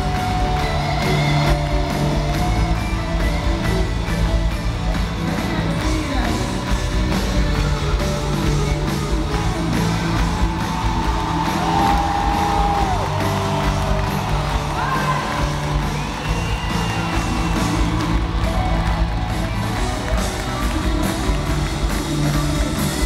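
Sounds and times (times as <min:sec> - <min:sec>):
crowd whooping and cheering: 0:00.0 - 0:06.4, 0:09.3 - 0:23.0
live pop-rock band playing: 0:00.0 - 0:23.0.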